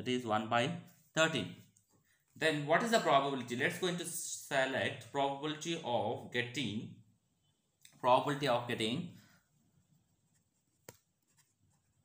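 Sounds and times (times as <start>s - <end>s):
pen scratching on paper: 9.8s - 12.0s.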